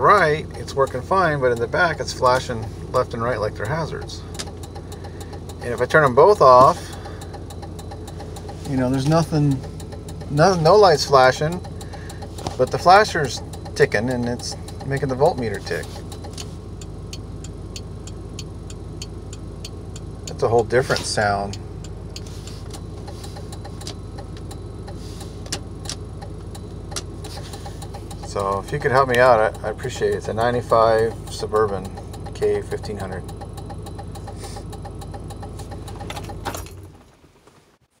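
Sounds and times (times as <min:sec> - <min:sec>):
turn-signal flasher ticking: 0:00.0 - 0:36.4
car engine idling: 0:00.0 - 0:37.8.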